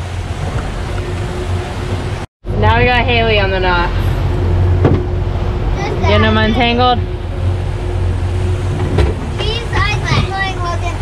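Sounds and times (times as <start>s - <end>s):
boat engine running: 0.0s - 11.0s
water washing past hull: 0.0s - 11.0s.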